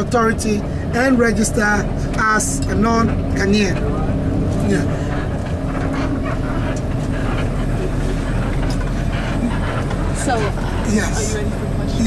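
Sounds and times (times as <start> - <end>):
bus engine rumbling: 0.0 - 12.0.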